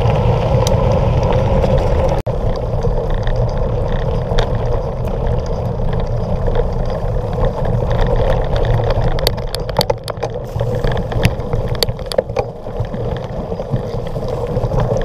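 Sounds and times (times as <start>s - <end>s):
bike rattling over stones: 0.0s - 15.0s
tyres rolling on dirt trail: 0.0s - 15.0s
wind buffeting microphone: 0.0s - 15.0s.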